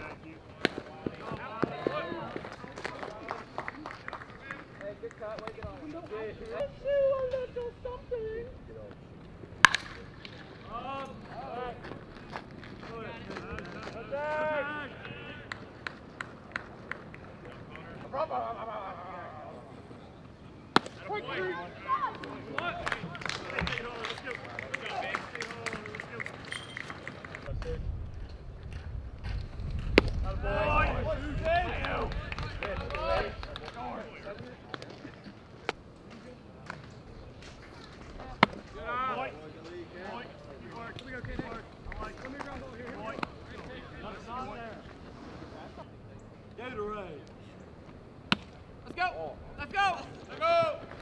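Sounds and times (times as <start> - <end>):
bat cracking baseball: 9.6 - 10.4.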